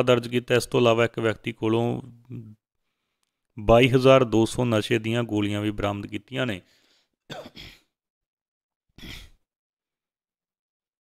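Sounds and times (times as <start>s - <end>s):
person breathing: 2.8s - 3.4s, 6.6s - 7.2s.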